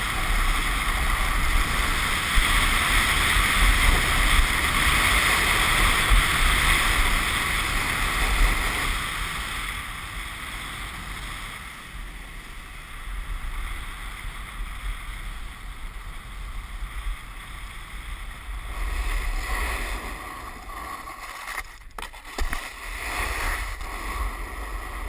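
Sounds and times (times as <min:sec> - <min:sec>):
hiss of sliding on snow: 0:00.0 - 0:25.0.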